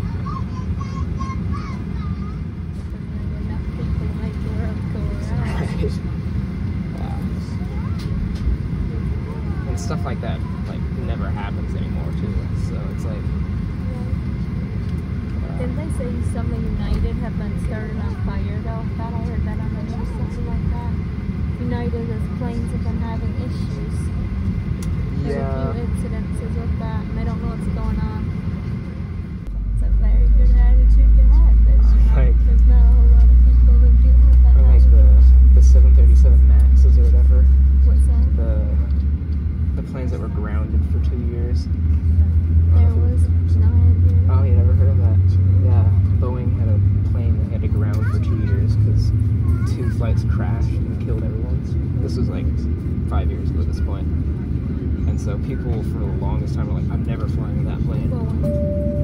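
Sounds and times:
aircraft engines rumbling: 0:00.0 - 0:59.0
passengers chatting quietly: 0:00.0 - 0:59.0.

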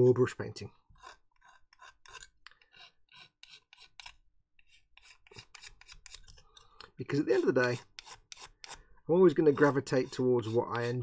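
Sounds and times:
sanding stick on plastic: 0:07.1 - 0:11.0.

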